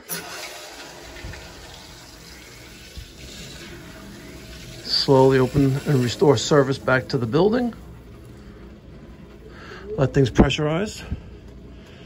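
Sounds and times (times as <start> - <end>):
water rushing through pipes: 0.0 - 10.0.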